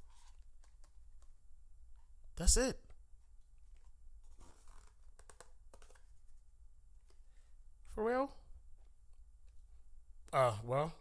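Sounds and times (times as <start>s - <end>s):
paper rustling: 3.7s - 6.4s.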